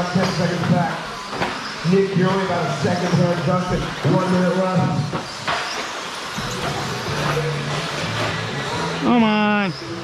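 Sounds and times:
electric rc trucks running: 0.0 - 10.0.

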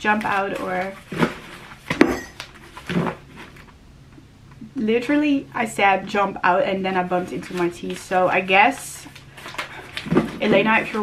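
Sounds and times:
paper handling: 7.2 - 11.0.

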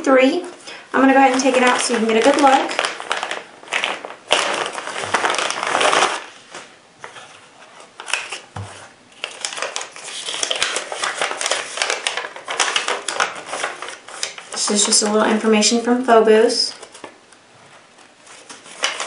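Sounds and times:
plastic bag crinkling: 0.4 - 6.7, 9.2 - 15.5
paper sheet rustling: 0.4 - 15.8, 16.5 - 19.0.

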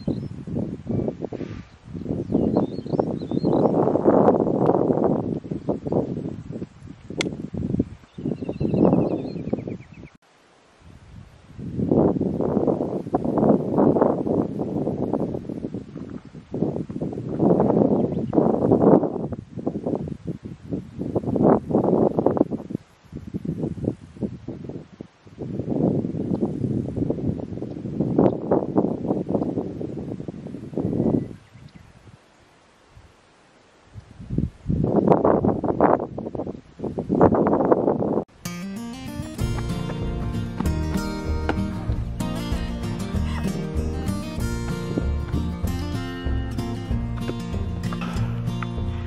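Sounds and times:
wind buffeting microphone: 0.0 - 10.2, 10.8 - 33.2, 33.8 - 38.3, 39.1 - 49.0
background music: 38.4 - 49.0.

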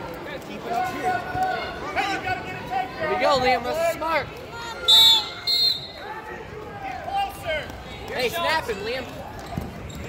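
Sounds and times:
referee's whistle blasts: 4.8 - 6.0.

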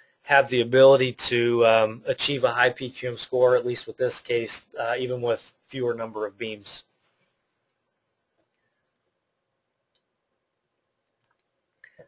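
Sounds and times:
person speaking: 0.3 - 6.9.

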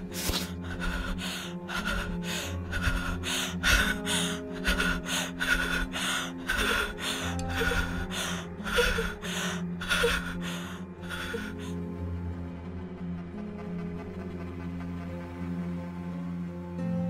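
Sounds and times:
low music drone: 0.0 - 17.0
woman gasping for breath: 0.2 - 11.8.

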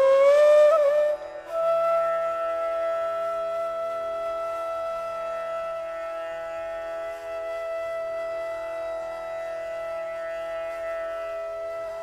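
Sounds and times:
bamboo flute long note: 0.0 - 12.0.

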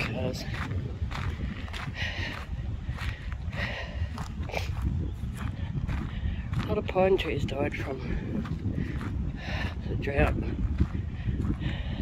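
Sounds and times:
footsteps crunching on gravel: 0.0 - 12.0
wind rumbling on microphone: 0.0 - 12.0.

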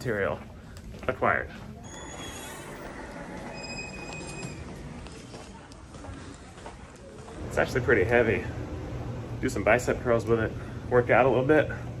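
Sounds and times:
background noise: 0.0 - 12.0.

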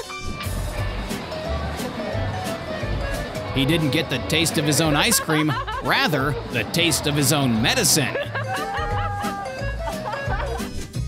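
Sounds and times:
background music: 0.0 - 11.0
people laughing: 1.0 - 10.8.

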